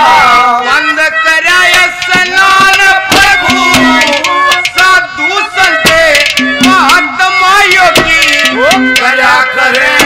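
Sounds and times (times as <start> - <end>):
man singing: 0.1 - 10.0
sustained melodic accompaniment: 1.0 - 10.0
hand drum strokes: 1.7 - 5.0, 5.6 - 7.1, 7.7 - 9.2.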